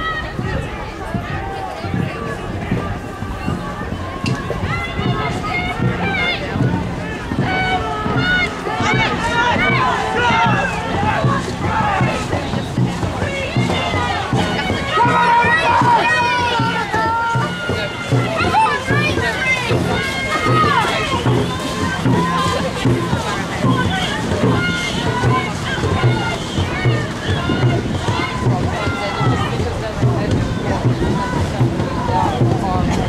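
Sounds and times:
crowd shouting and cheering: 0.0 - 33.0
paddles splashing in water: 0.0 - 33.0
steady drumbeat: 0.2 - 33.0.

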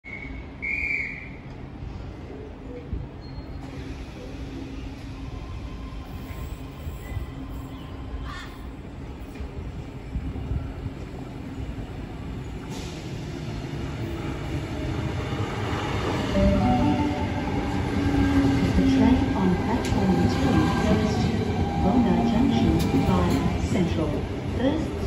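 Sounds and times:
electric train rumbling: 0.2 - 25.0.

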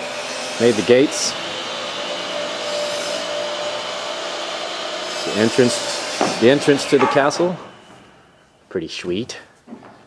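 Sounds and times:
blower rushing air: 0.0 - 8.6.

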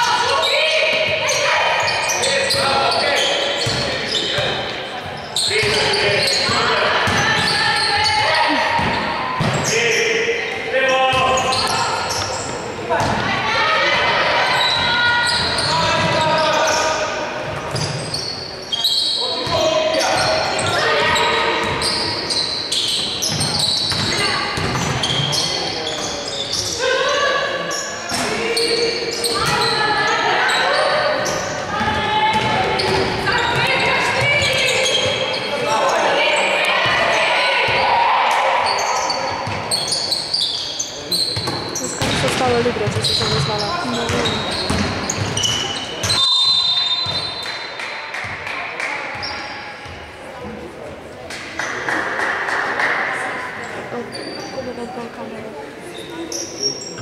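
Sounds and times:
voices calling out: 17.8 - 47.7
basketball bouncing on wooden floor: 41.4 - 45.4.

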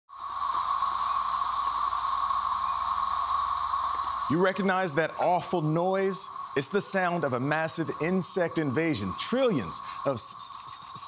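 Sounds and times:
cicadas droning: 0.1 - 11.0.

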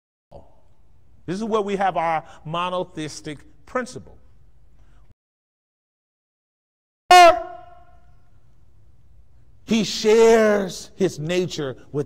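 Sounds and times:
man shouting with echo: 7.1 - 8.1.

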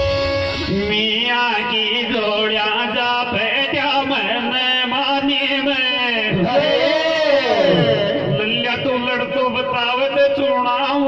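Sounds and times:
steady held note: 0.0 - 1.8
man singing into a microphone: 0.6 - 11.0.

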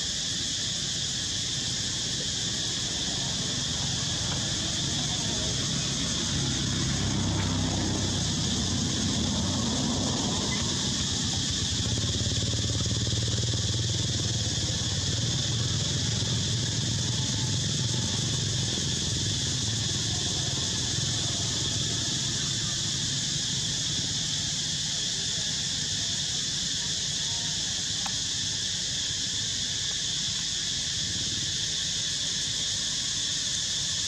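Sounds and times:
high-pitched hiss: 0.0 - 34.0
vehicle engine running: 2.4 - 25.3.

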